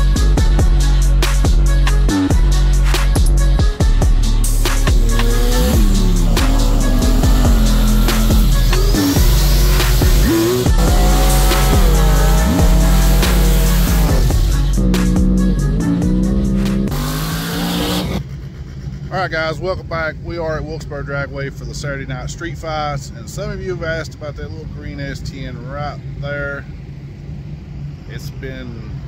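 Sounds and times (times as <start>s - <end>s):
loud electronic music: 0.0s - 18.3s
car engines revving: 4.2s - 20.0s
tyres squealing: 4.6s - 14.3s.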